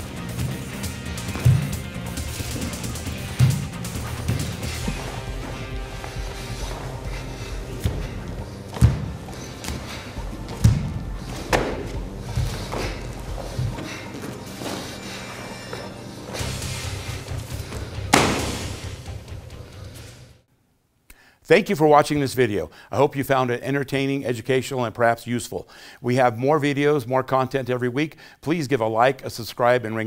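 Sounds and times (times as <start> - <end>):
background music: 0.0 - 20.5
slaps and thuds of blocking: 10.6 - 12.0, 18.1 - 18.8.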